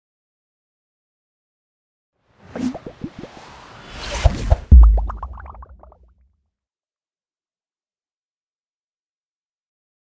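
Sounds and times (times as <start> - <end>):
bubbly plop sound effects: 2.5 - 3.4, 4.2 - 6.0.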